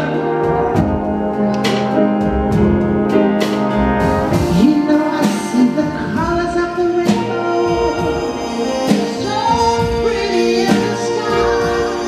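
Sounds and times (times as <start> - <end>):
jazz big band playing: 0.0 - 12.0.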